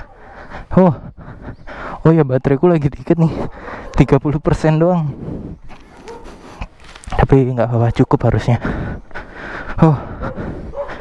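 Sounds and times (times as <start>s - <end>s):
background noise: 0.0s - 11.0s.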